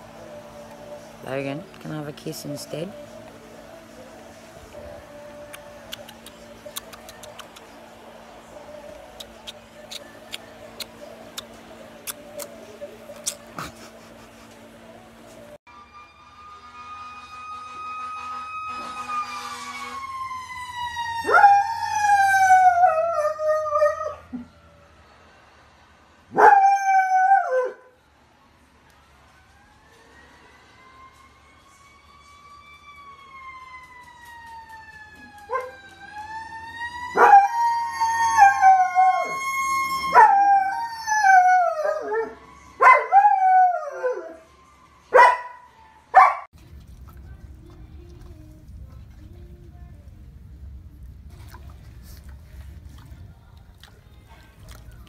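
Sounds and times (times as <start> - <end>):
dog howling: 37.1 - 44.4.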